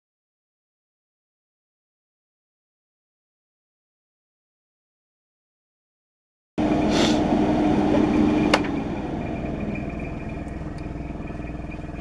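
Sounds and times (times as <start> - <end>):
extractor fan and air hiss: 6.6 - 10.5.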